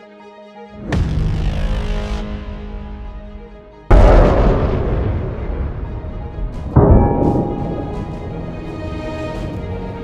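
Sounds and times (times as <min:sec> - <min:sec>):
background music: 0:00.0 - 0:10.0
rumbling echo: 0:03.9 - 0:09.5.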